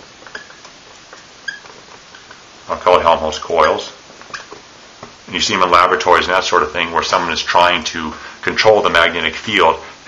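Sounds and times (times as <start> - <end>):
marker squeaking on whiteboard: 0.0 - 2.5, 3.4 - 4.6.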